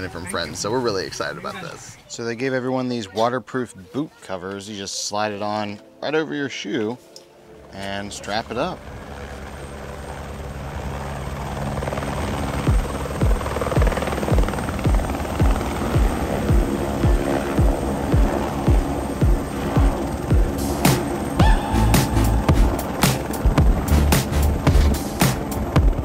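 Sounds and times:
helicopter rotor and engine: 7.1 - 26.0
background music with steady beat: 12.4 - 26.0.

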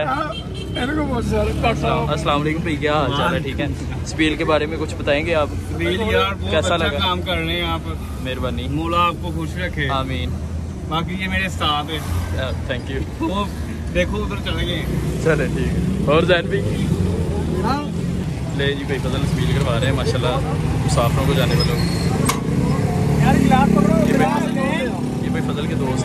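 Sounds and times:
indistinct voices talking: 0.0 - 26.0
street traffic: 0.0 - 26.0.

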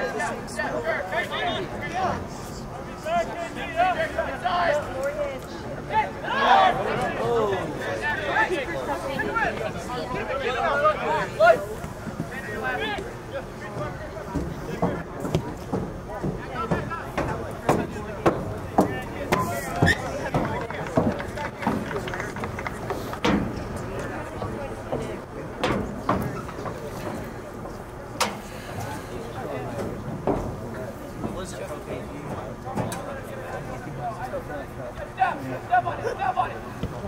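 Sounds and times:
voices calling and shouting: 0.0 - 37.0.

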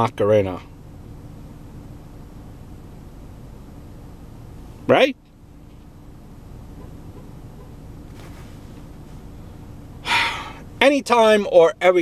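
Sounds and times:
steady low rumble: 0.0 - 12.0
man breathing loudly: 10.0 - 10.7.

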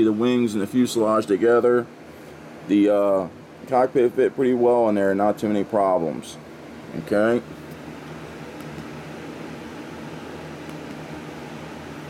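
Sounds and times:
fan-like hum: 0.0 - 12.0
room noise hiss: 0.0 - 12.0.

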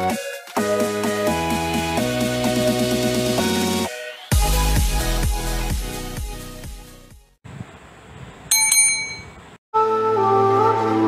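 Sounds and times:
bright bell ding: 8.5 - 9.4.

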